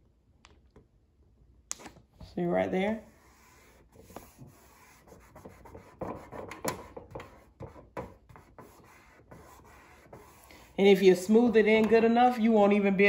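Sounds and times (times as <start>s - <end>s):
hands rubbing contact paper: 2.9s - 11.0s.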